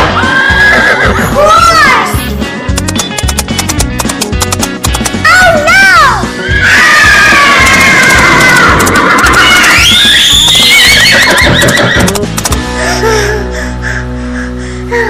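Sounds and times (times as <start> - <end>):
horse whinnying: 0.0 - 1.4, 6.4 - 12.2
background music: 0.0 - 15.0.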